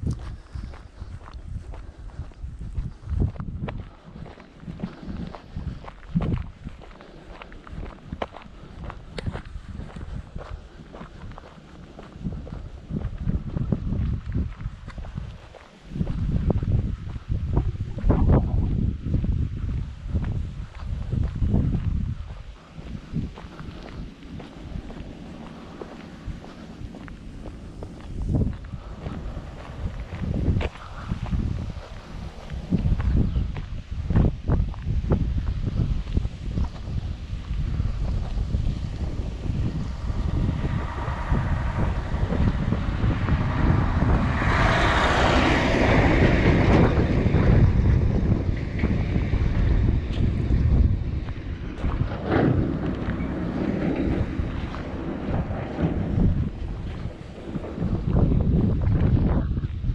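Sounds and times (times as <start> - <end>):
footsteps on gravel: 0.0 - 59.9
wind buffeting microphone: 0.0 - 59.9
lorry passing: 22.4 - 33.2, 36.3 - 59.4.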